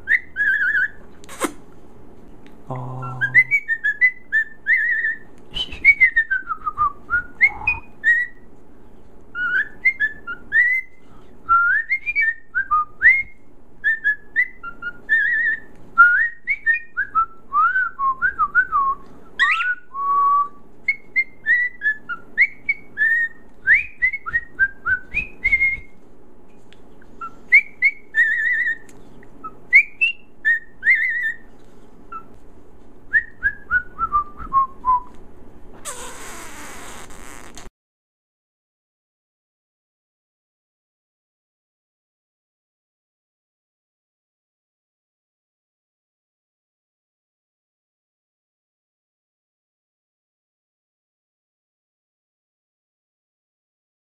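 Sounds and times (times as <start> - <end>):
cockatiel whistling: 0.0 - 1.5, 3.0 - 8.4, 9.3 - 10.9, 11.6 - 18.4, 19.4 - 20.1, 20.9 - 25.9, 27.2 - 31.4, 35.9 - 37.6.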